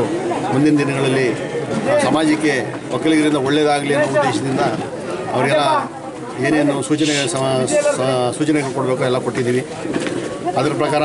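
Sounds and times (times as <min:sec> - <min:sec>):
man talking: 0:00.5 - 0:09.7.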